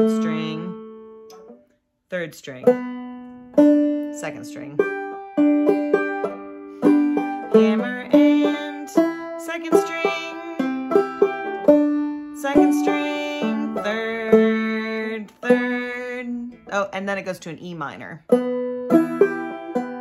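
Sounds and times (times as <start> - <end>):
banjo played clawhammer style: 0.0 - 1.6, 2.2 - 20.0.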